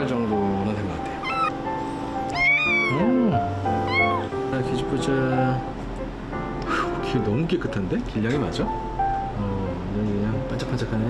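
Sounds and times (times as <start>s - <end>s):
kitten meowing: 1.1s - 1.7s, 2.3s - 4.4s.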